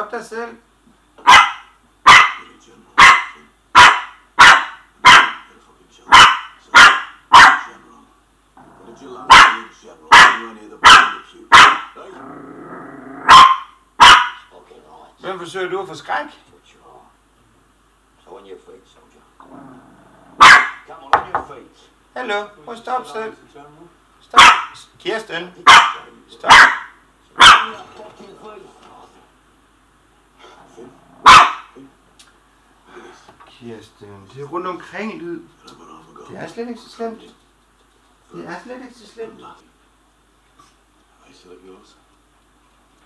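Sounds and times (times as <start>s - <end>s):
puppy barking: 1.2s - 5.5s, 6.1s - 7.7s, 9.3s - 12.0s, 13.2s - 14.5s, 20.4s - 20.9s, 24.3s - 24.8s, 25.6s - 27.8s, 31.2s - 31.8s.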